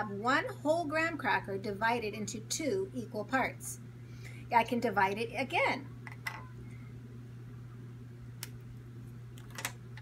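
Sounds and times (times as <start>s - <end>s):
low room hum: 0.0s - 10.0s
crackers snapping: 8.4s - 8.7s.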